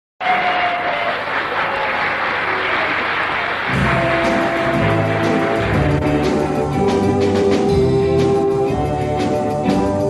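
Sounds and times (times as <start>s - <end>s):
audience applauding: 0.2s - 6.9s
orchestra playing: 3.7s - 10.0s.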